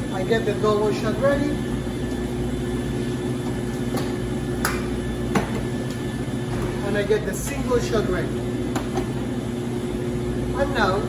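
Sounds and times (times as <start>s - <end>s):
cafe equipment hum: 0.0s - 11.0s.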